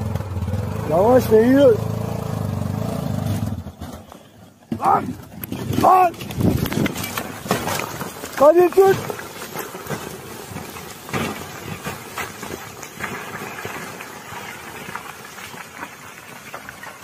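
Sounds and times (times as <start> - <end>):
rumble of sliding rocks: 0.0 - 17.0
knocks and thuds: 4.7 - 12.6.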